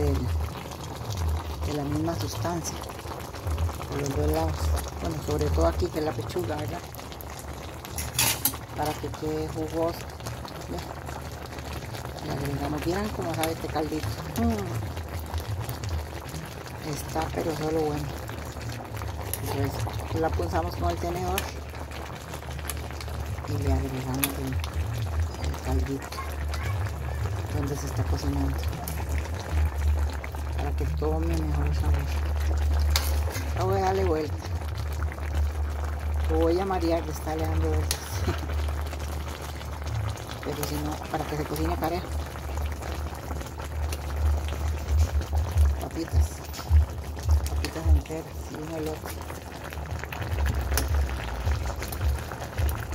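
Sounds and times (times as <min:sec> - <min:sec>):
broth simmering and bubbling: 0:00.0 - 0:52.9
liquid pouring: 0:00.0 - 0:52.9.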